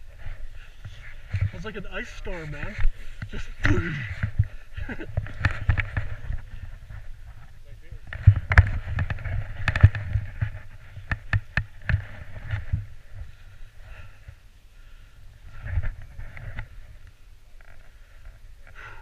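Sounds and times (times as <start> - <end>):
person laughing: 4.7 - 5.2.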